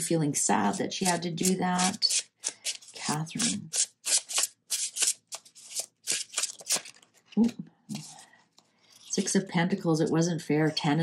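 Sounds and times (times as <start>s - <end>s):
cards being shuffled: 1.0s - 8.2s.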